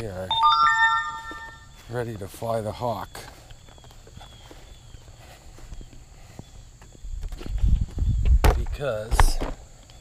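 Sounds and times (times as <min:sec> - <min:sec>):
footsteps: 0:00.4 - 0:02.0.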